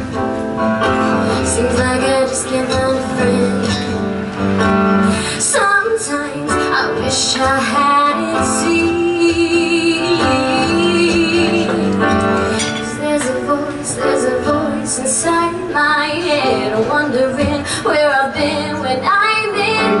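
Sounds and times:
acoustic guitar: 0:00.0 - 0:20.0
woman singing: 0:01.1 - 0:04.2, 0:05.0 - 0:20.0.

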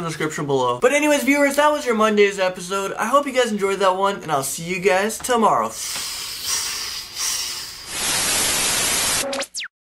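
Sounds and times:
static hiss: 0:07.4 - 0:09.4.

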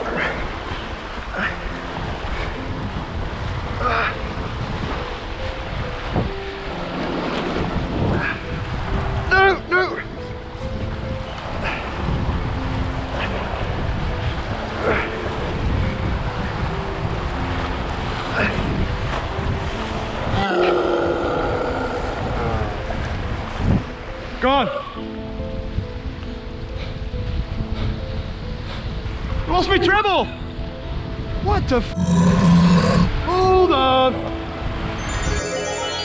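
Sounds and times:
background music with held notes: 0:00.0 - 0:36.0
wind buffeting microphone: 0:01.9 - 0:09.3, 0:10.0 - 0:20.4, 0:21.9 - 0:24.1, 0:25.4 - 0:29.5
person shouting: 0:20.4 - 0:22.6.

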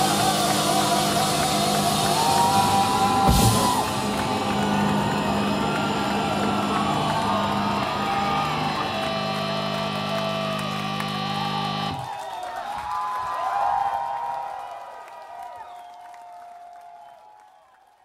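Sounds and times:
crowd cheering and whooping: 0:00.0 - 0:18.0.

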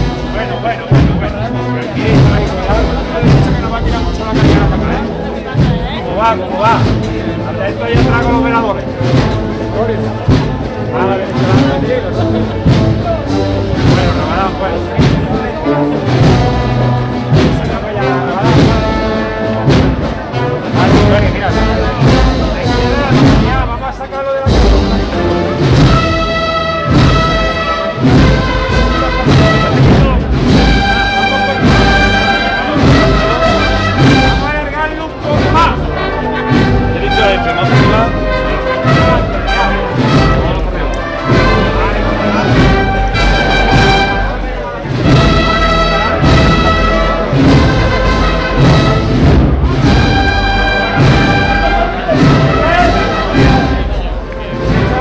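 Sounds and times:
brass chords: 0:00.0 - 0:55.0
marching drum beat: 0:00.0 - 0:55.0.

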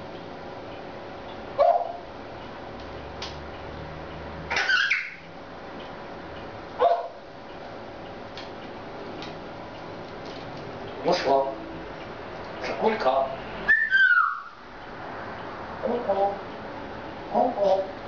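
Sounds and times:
pet animal calls: 0:13.7 - 0:14.6.

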